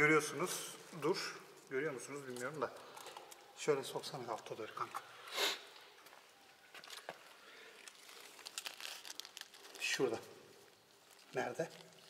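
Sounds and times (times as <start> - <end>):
crinkling rustling handling noise: 5.8 - 12.0.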